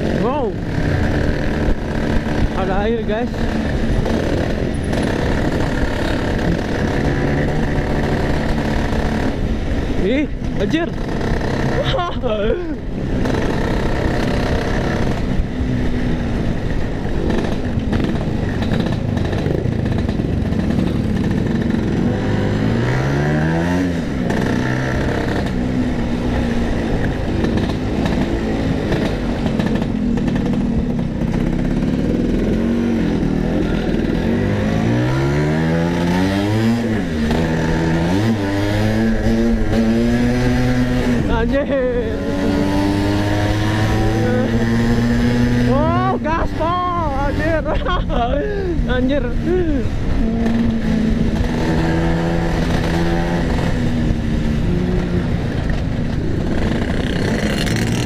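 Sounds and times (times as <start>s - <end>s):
scooter engine revving: 0.0s - 58.0s.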